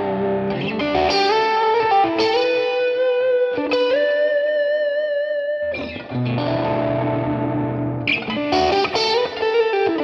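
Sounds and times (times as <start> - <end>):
overdriven electric guitar chord: 0.0 - 10.0
picked guitar notes: 0.0 - 10.0.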